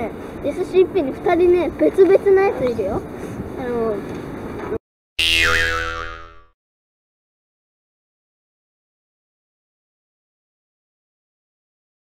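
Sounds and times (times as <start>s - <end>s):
comic boing twang: 5.2s - 6.6s.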